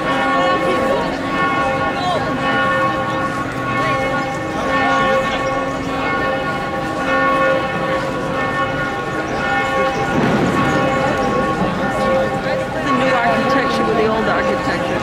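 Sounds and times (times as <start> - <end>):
church bells ringing: 0.0 - 15.0.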